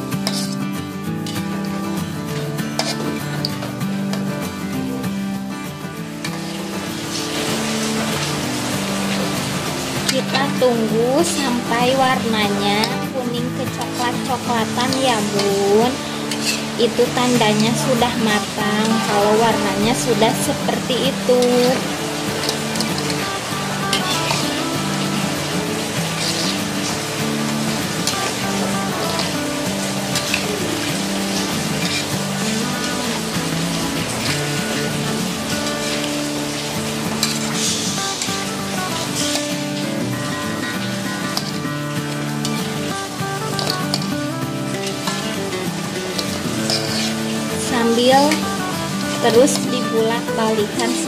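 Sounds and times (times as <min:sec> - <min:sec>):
background music: 0:00.0 - 0:51.0
metal spatula stirring: 0:00.2 - 0:01.9, 0:02.6 - 0:04.2, 0:13.6 - 0:39.9, 0:40.8 - 0:41.6, 0:43.6 - 0:44.1, 0:44.8 - 0:48.4
food deep-frying in oil: 0:06.2 - 0:51.0.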